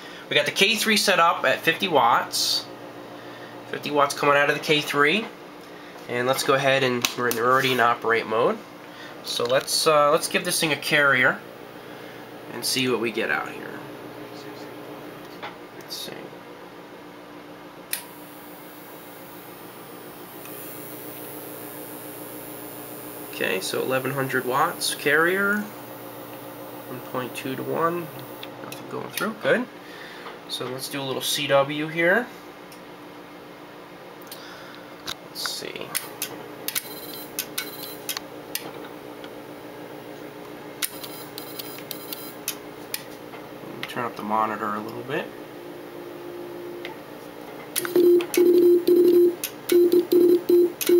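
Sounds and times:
amplifier hum: 0:00.0 - 0:28.8, 0:35.4 - 0:50.9
fan noise: 0:00.0 - 0:50.9
morse code clicking: 0:47.8 - 0:50.9.

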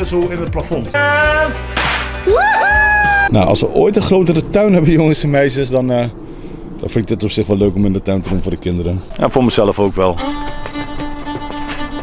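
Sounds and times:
confetti cannon burst: 0:01.7 - 0:02.2
children shouting and screaming: 0:02.2 - 0:03.3.

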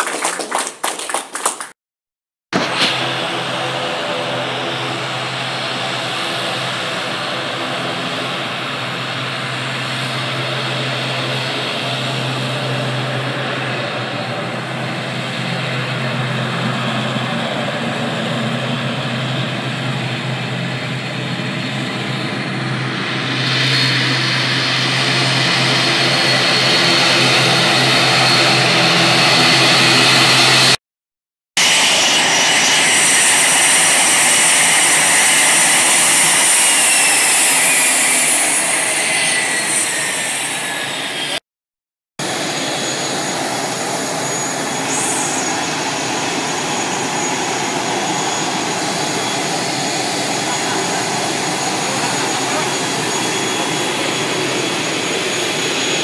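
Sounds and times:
turboprop airliner engine drone: 0:02.6 - 0:30.8, 0:31.6 - 0:41.4, 0:42.2 - 0:56.0.

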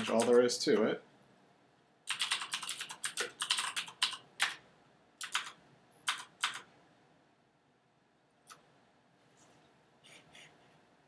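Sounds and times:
computer keyboard typing: 0:00.0 - 0:00.5, 0:02.1 - 0:04.6, 0:05.2 - 0:06.7.

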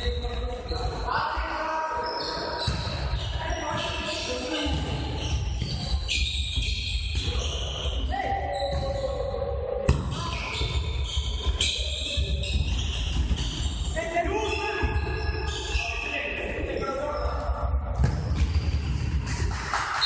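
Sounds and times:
ball kicked and bouncing: 0:02.6 - 0:03.9, 0:04.7 - 0:07.4, 0:18.0 - 0:19.4.

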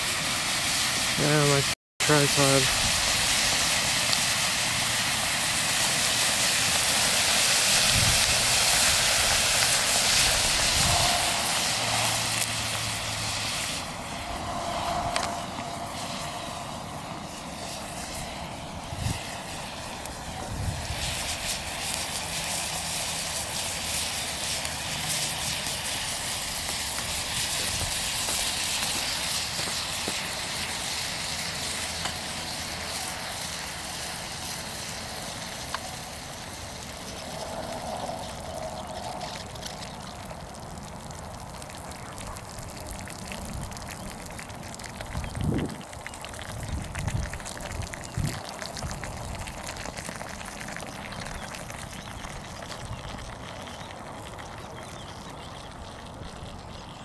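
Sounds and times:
thermite burning with hiss: 0:00.0 - 0:56.9.

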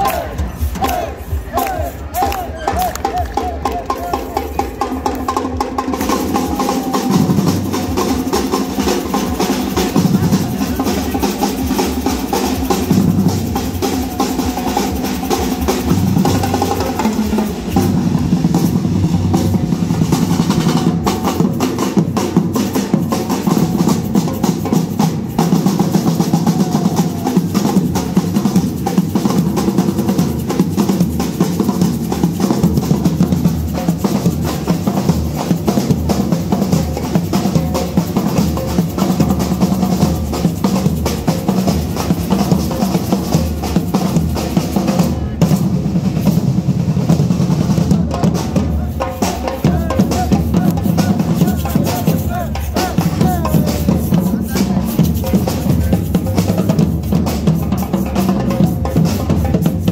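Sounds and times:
drum troupe playing marching drums: 0:00.0 - 0:59.9.

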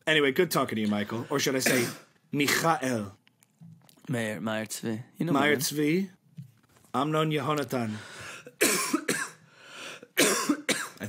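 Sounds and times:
man coughing: 0:01.2 - 0:03.1, 0:08.5 - 0:09.4, 0:10.1 - 0:11.0.

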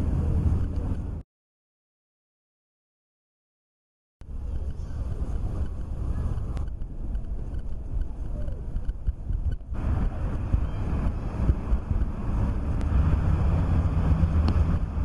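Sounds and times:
wind buffeting microphone: 0:00.0 - 0:01.2, 0:04.2 - 0:15.0.

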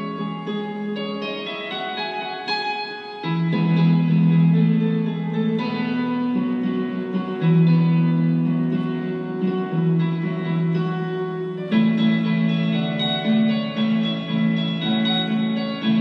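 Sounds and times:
plucked string melody: 0:00.0 - 0:16.0.

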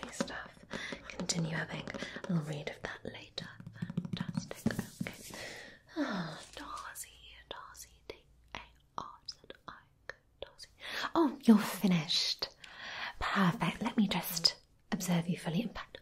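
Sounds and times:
woman whispering: 0:06.0 - 0:11.3, 0:13.1 - 0:16.0.

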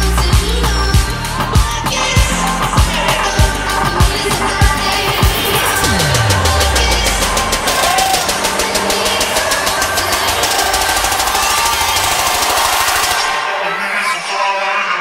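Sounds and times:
deep bass sweep: 0:00.0 - 0:13.2
electronic dance music: 0:00.0 - 0:15.0
rapid drum roll: 0:04.1 - 0:13.2.

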